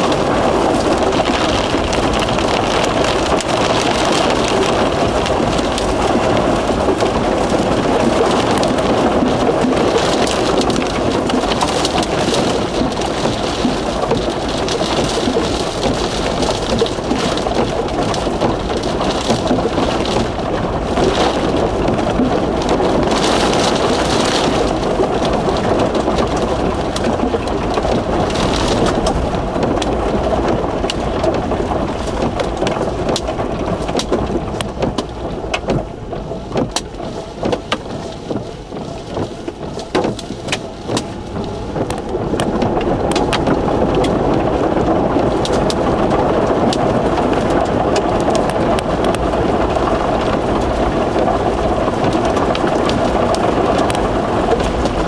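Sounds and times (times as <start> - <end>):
rain: 0.0 - 55.0
wind: 0.0 - 55.0.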